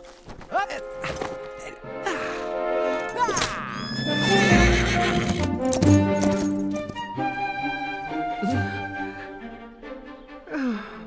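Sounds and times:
hooves clip-clopping: 0:00.0 - 0:01.7
orchestral music: 0:00.7 - 0:11.0
horse whinnying: 0:03.2 - 0:05.6.

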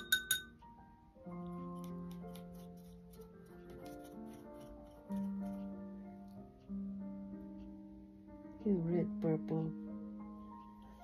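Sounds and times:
paintbrush clinking on glass jar: 0:00.0 - 0:00.6
soft background music: 0:00.0 - 0:11.0.

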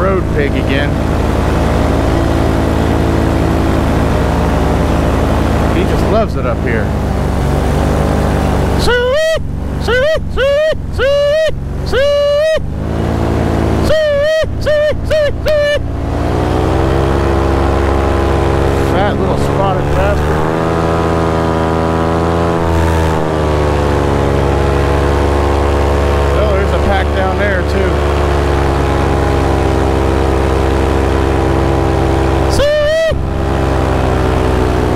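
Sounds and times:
paramotor engine and propeller: 0:00.0 - 0:34.9.

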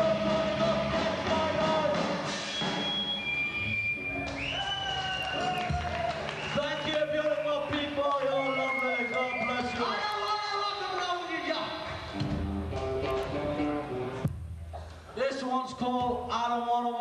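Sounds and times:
live punk rock band: 0:00.0 - 0:03.3.

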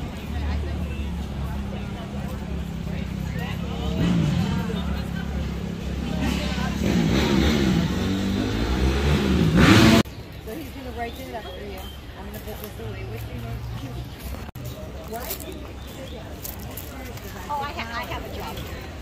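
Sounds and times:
people's voices: 0:00.0 - 0:19.0.

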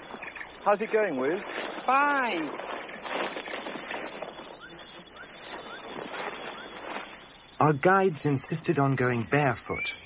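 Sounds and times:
small animal chirping: 0:00.0 - 0:07.6
rainforest ambience: 0:00.0 - 0:10.0.

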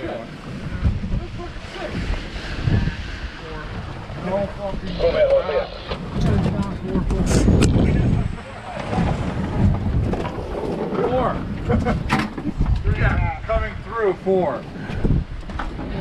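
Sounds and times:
water slapping boat hull: 0:00.0 - 0:16.0
wind buffeting microphone: 0:00.0 - 0:16.0.

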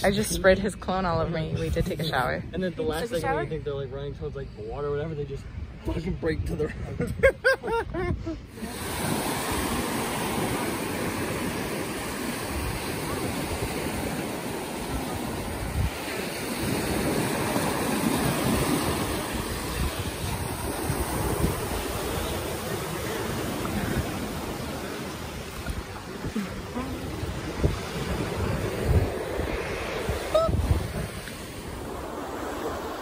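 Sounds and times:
wind on microphone: 0:00.0 - 0:03.4, 0:05.3 - 0:33.0
surf washing on sandy beach: 0:08.5 - 0:33.0.

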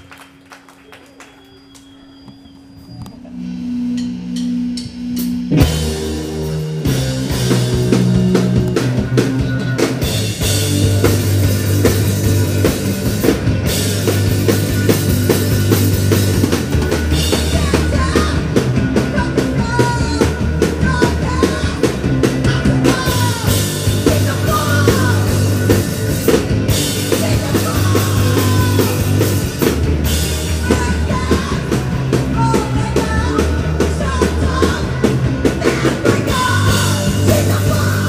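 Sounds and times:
punk rock band playing: 0:03.3 - 0:38.0
fast steady drumming: 0:04.0 - 0:38.0.

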